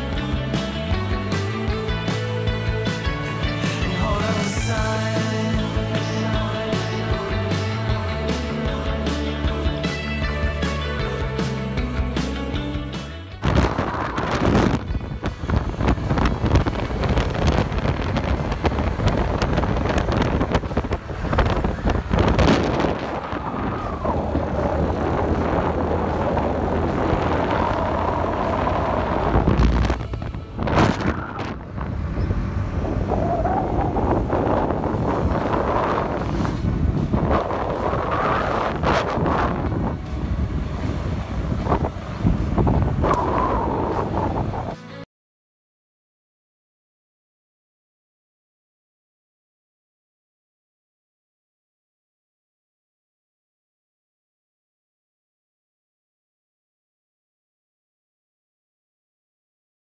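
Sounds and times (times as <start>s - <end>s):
wind rushing over microphone: 13.3s - 44.8s.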